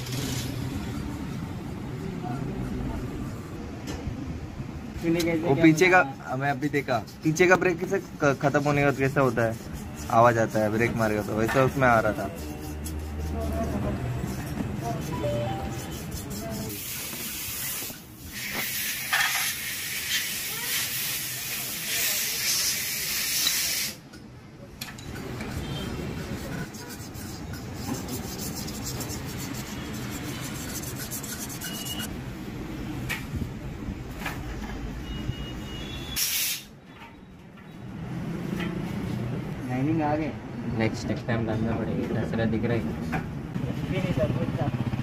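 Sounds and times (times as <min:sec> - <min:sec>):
hissing and scrubbing in solvent: 0:07.9 - 0:14.6, 0:26.2 - 0:32.1
compressed air hiss: 0:16.8 - 0:24.0, 0:36.2 - 0:36.7.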